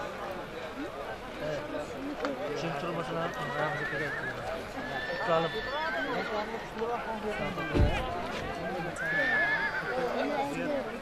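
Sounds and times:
horses neighing: 3.0 - 6.8, 8.6 - 10.6.

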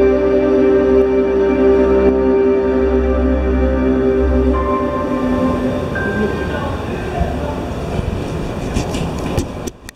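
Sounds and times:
loud low rumbling: 0.0 - 9.2.

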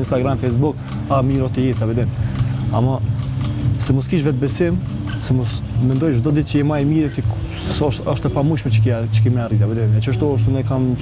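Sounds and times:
man talking: 0.0 - 3.1, 3.8 - 11.0.

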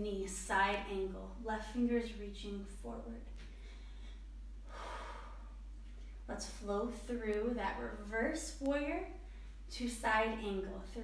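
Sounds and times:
woman breathing: 3.4 - 6.2, 9.2 - 9.7.

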